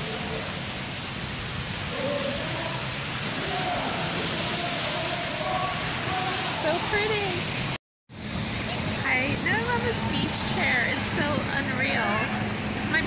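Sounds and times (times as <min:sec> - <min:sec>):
sea waves breaking on sand: 0:00.0 - 0:13.0
faint voices: 0:01.9 - 0:07.5.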